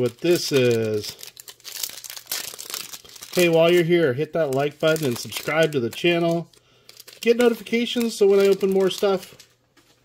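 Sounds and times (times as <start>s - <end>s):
foil wrapper crinkling and tearing: 0.0s - 9.5s.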